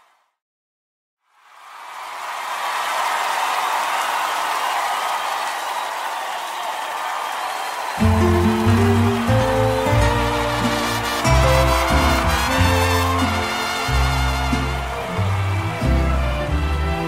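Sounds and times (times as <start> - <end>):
live audience cheering: 1.4 - 17.0
band playing latin ballad: 8.0 - 17.0.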